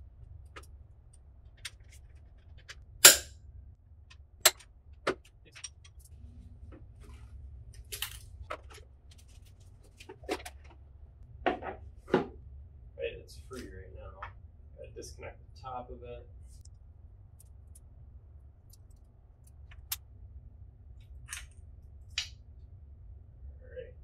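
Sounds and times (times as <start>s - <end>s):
low steady hum: 0.0s - 24.0s
wrench clinking on metal: 3.0s - 3.3s.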